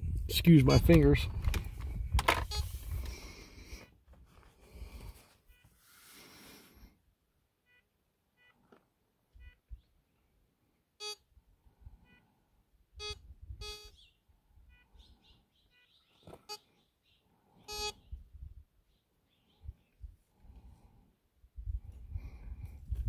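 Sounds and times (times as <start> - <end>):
metal detector beeping: 2.3 - 3.2, 11.0 - 11.3, 12.0 - 12.3, 13.0 - 14.0, 14.7 - 15.0, 17.6 - 18.0.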